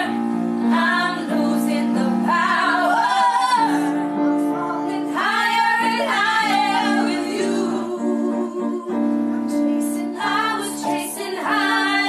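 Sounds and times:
held keyboard chords: 0.0s - 12.0s
women singing a pop song: 0.0s - 12.0s.

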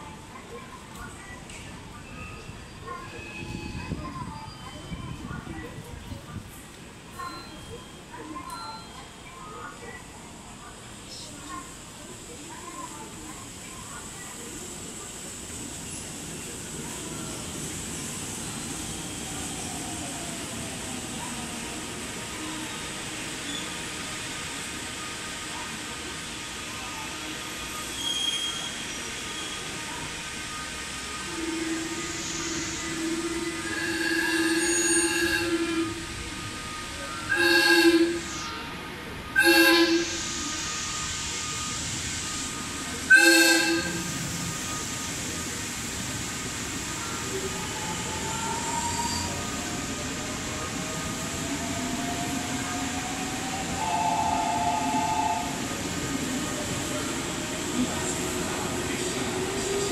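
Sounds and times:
train passing through station: 0.0s - 59.9s
train horn blasts: 33.6s - 36.0s, 37.3s - 38.3s, 39.4s - 40.2s, 43.1s - 44.2s, 53.8s - 55.6s.

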